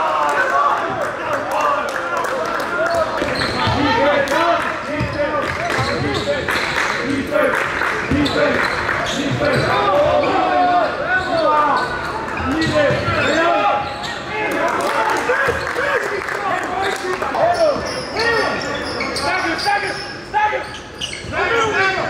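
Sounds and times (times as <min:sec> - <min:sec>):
sneakers squeaking: 0:03.0 - 0:04.2, 0:04.8 - 0:07.0, 0:07.9 - 0:14.4, 0:16.8 - 0:22.0.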